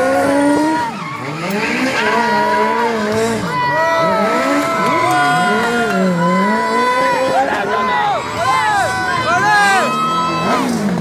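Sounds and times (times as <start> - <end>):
car engine revving: 0.0 - 11.0
car tyres squealing: 0.0 - 11.0.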